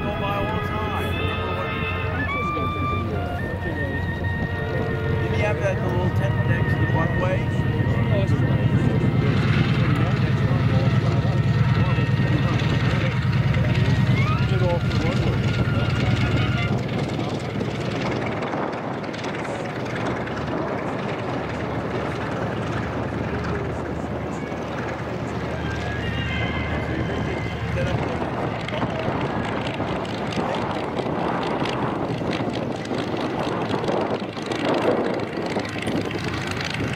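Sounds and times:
aircraft engine droning: 0:00.0 - 0:36.9.

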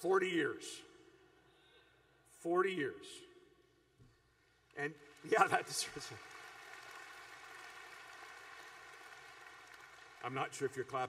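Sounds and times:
person giving a speech: 0:04.8 - 0:06.2
audience applauding: 0:04.8 - 0:11.0.

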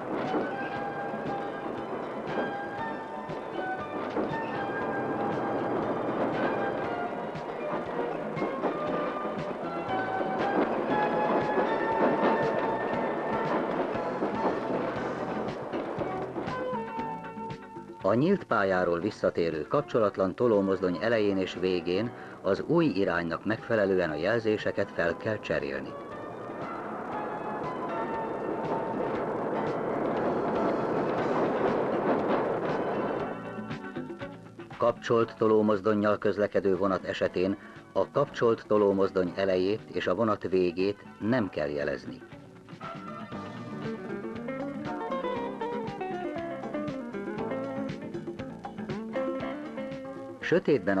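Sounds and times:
background music of held notes: 0:00.0 - 0:51.0
diesel locomotive passing: 0:00.0 - 0:51.0
freight train rolling: 0:00.0 - 0:51.0
wheels clicking over rail joints: 0:00.0 - 0:51.0.

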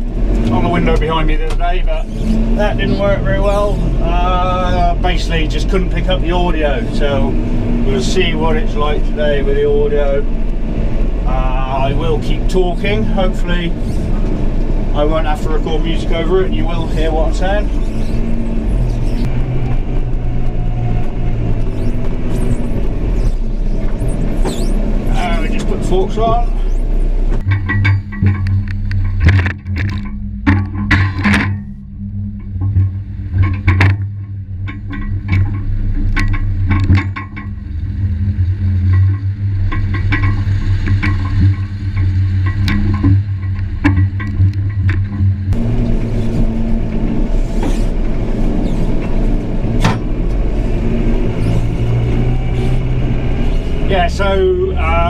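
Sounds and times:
diesel engine running: 0:00.0 - 0:55.0.

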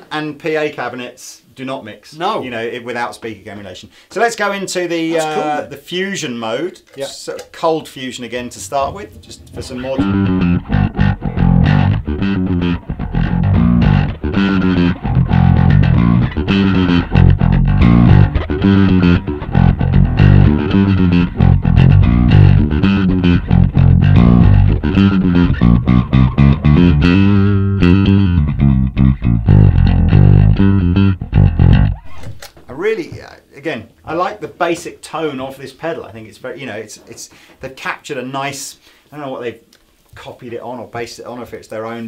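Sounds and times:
electric bass guitar riff: 0:08.4 - 0:32.7.

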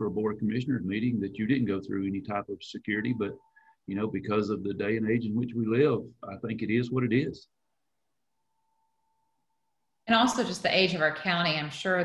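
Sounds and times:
faint steady tone: 0:00.0 - 0:11.2.

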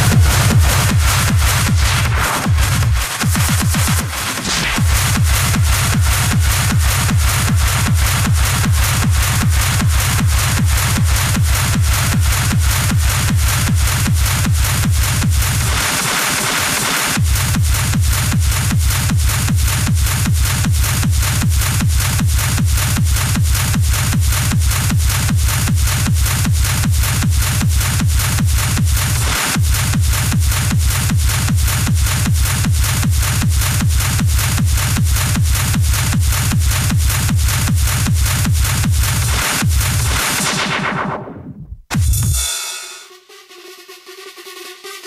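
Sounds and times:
fast kick drum: 0:00.0 - 0:40.9, 0:41.5 - 0:42.7
hi-hats and noise: 0:00.0 - 0:41.3, 0:41.9 - 0:45.0.

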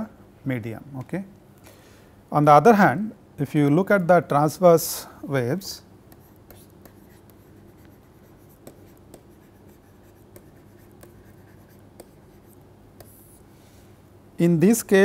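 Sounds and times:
low steady hum: 0:00.0 - 0:15.0
stylus tapping and scratching tablet: 0:06.1 - 0:13.4.

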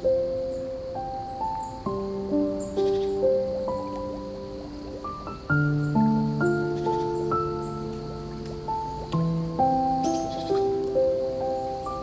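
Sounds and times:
slow gentle piano music: 0:00.0 - 0:12.0.

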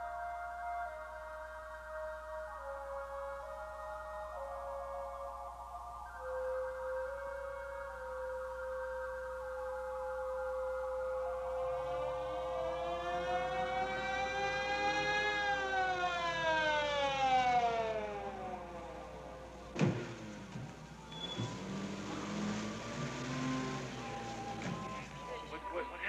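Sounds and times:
wailing tone: 0:00.0 - 0:26.0.

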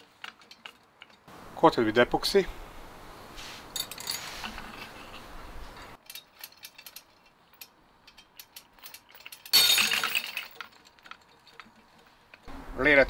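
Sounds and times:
clatter of metal hardware: 0:00.0 - 0:01.3, 0:03.8 - 0:05.2, 0:05.9 - 0:12.5
metal clicks from hooks and chain: 0:00.0 - 0:01.3, 0:06.0 - 0:12.5.

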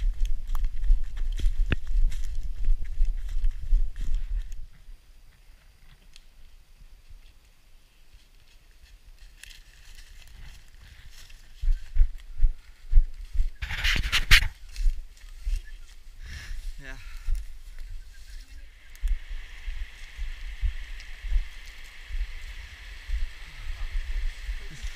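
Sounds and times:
running footsteps on dirt trail: 0:00.0 - 0:05.4, 0:08.1 - 0:24.9
rustling of branches: 0:00.0 - 0:24.9.

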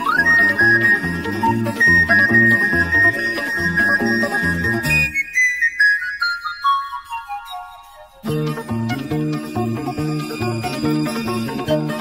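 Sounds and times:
backing accompaniment: 0:00.0 - 0:05.2.

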